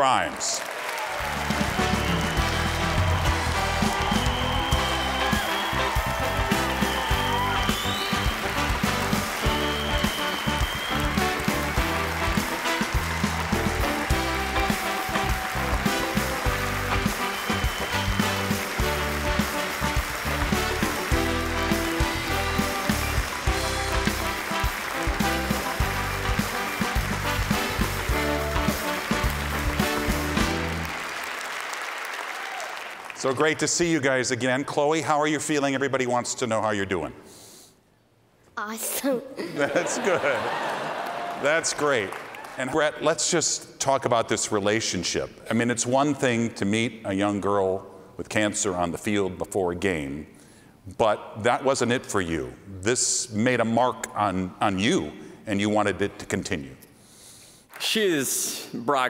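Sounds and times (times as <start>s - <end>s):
audience applause: 0.0s - 33.6s, 39.7s - 43.0s
upbeat band music: 1.1s - 31.4s.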